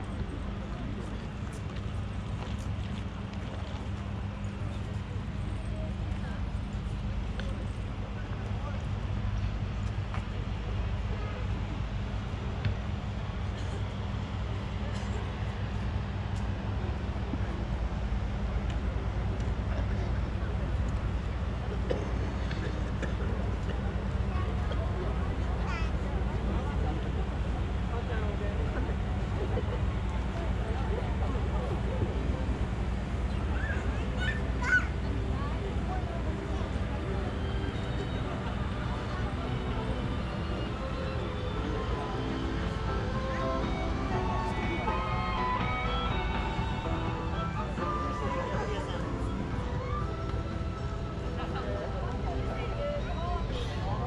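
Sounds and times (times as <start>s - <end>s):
crowd chatter: 0.0s - 54.0s
steady low rumble: 0.0s - 54.0s
music with held notes: 30.2s - 54.0s.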